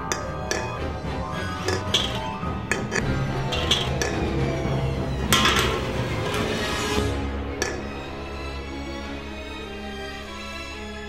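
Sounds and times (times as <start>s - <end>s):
metal can clinking on concrete: 0.1s - 0.8s, 1.6s - 4.3s, 5.3s - 6.5s, 7.6s - 7.9s.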